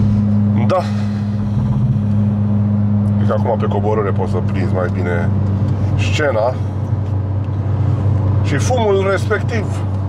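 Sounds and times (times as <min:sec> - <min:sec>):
car engine droning: 0:00.0 - 0:10.0
road noise: 0:00.0 - 0:10.0.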